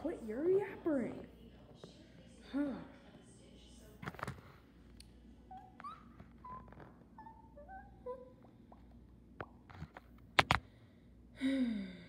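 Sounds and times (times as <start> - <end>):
pet animal chirping: 5.5 - 8.5.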